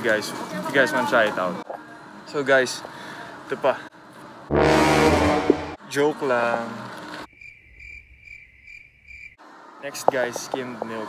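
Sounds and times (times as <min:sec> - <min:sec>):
crickets chirping: 0:07.3 - 0:09.4.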